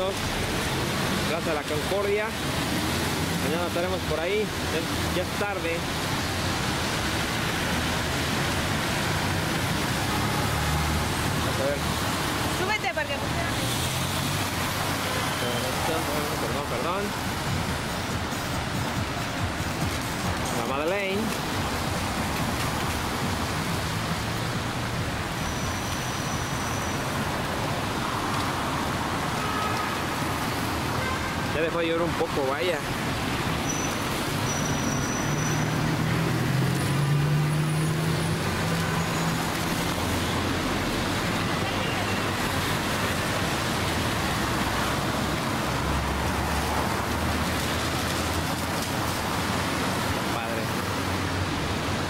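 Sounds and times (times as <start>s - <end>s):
city traffic: 0.0s - 52.0s
tyres hissing on wet pavement: 0.0s - 52.0s.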